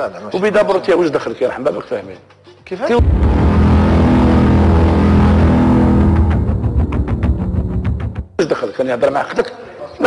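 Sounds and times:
low rumble with held chord: 3.0 - 8.2
drum hits: 3.0 - 8.4.

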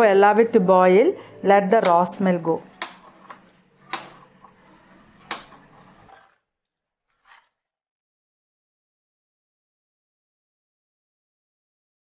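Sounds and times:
wooden spoon knocking on pot: 1.8 - 4.6
faint stirring in clay pot: 1.8 - 6.4.

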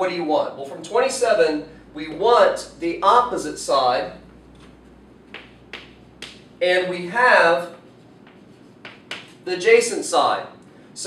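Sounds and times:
chalk tapping on chalkboard: 4.3 - 6.6, 7.7 - 9.4.

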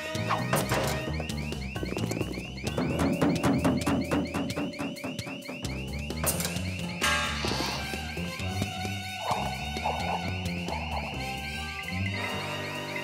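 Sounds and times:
electronic alarm whooping: 0.0 - 8.5, 9.2 - 13.0.

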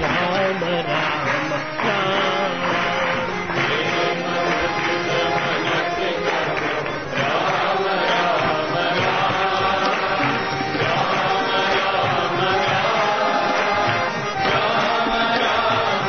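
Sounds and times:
devotional chanting with music: 0.0 - 16.0.

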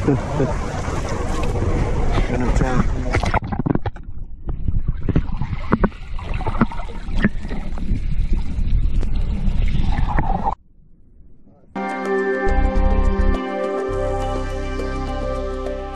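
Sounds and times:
underwater rushing rumble: 0.0 - 10.6
music: 11.8 - 15.9.

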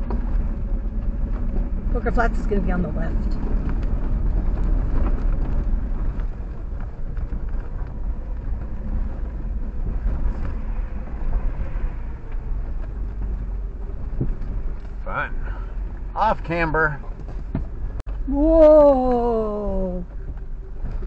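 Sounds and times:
knocks and rattles over rocks: 0.0 - 18.9, 20.0 - 21.0
vehicle engine and tyres rumbling: 0.0 - 21.0.

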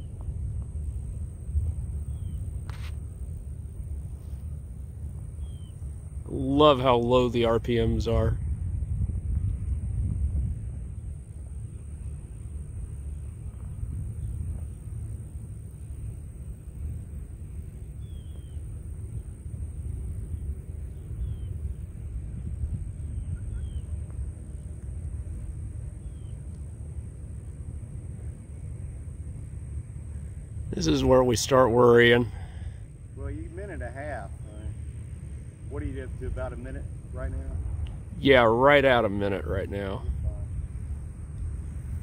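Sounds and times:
faint high whine: 0.0 - 42.0
wind rumbling on microphone: 0.0 - 42.0
faint bird chirps: 2.0 - 2.9, 5.3 - 5.9, 17.8 - 19.4, 20.2 - 21.8, 23.0 - 24.0, 26.0 - 26.5.

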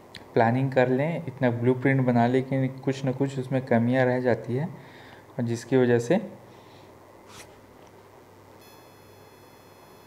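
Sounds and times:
high-pitched electronic whine: 8.6 - 10.0
low hum: 8.6 - 10.0.

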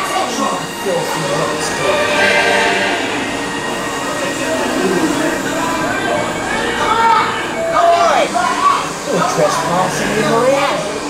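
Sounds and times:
background soundtrack: 0.0 - 8.1
faint indistinct voices: 0.0 - 11.0.

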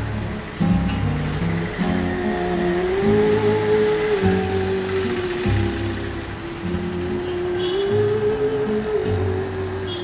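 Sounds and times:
background music: 0.0 - 10.0
vehicle engine hum: 0.0 - 10.0.

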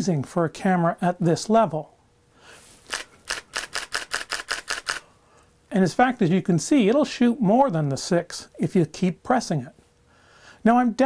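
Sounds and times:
camera shutter burst clacking: 2.9 - 5.0.

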